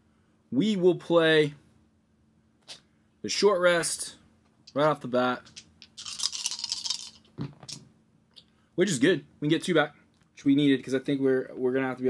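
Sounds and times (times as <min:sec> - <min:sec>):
hands rubbing together: 0:05.4 - 0:07.8.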